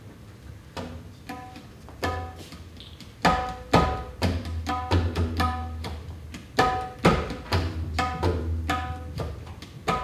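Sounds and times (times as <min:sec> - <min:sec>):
tabla hand strokes: 0:00.7 - 0:10.0.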